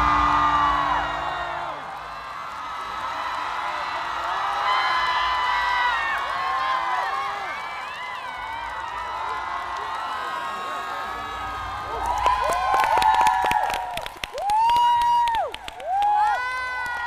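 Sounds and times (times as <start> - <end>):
audience cheering and applauding: 0.0 - 17.0
high whoops and screams: 0.0 - 17.0.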